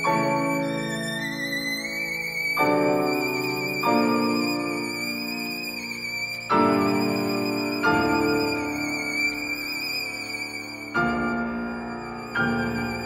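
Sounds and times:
piano chords: 0:00.0 - 0:13.0
violin holding high note: 0:00.0 - 0:13.0.

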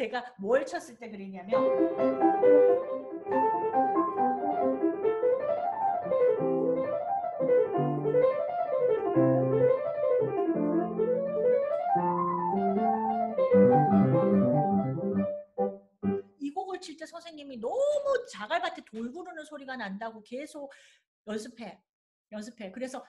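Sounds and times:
piano runs over low notes: 0:01.6 - 0:16.2.

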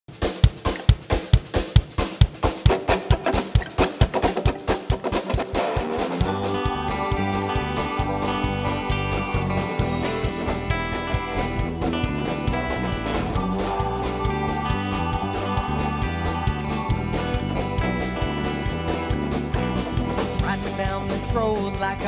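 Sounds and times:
drum kit beat: 0:00.1 - 0:22.0
electric guitar: 0:00.1 - 0:22.0
keyboard: 0:00.1 - 0:22.0
electric bass: 0:02.7 - 0:22.0.

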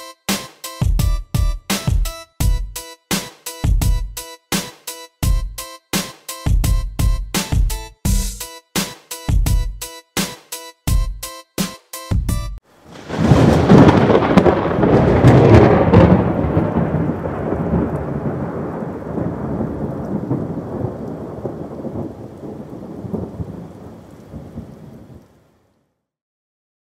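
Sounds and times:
thunder-like rumble with cracks: 0:12.9 - 0:25.3.

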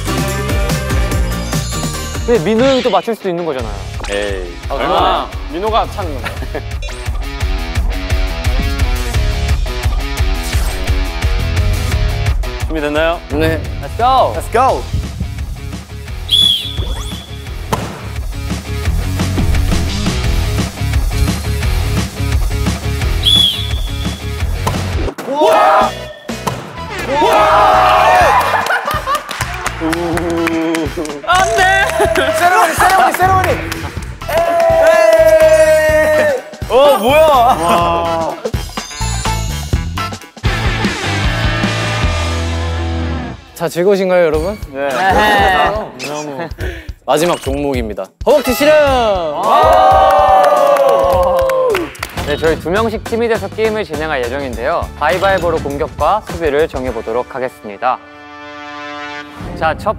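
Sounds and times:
rock music with driving beat: 0:03.6 - 0:25.2, 0:39.7 - 0:43.5
men shouting and cheering: 0:04.5 - 0:06.8, 0:25.1 - 0:38.6, 0:44.9 - 0:46.8, 0:48.9 - 0:52.0.

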